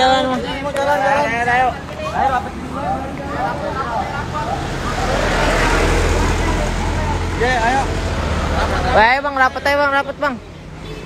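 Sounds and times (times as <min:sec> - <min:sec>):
vehicle engine rumble passing: 0:00.0 - 0:11.0.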